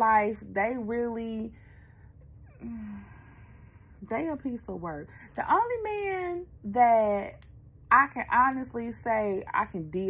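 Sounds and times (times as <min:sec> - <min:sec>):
woman humming low: 0:02.5 - 0:03.2
woman sighing breathily: 0:02.5 - 0:03.5.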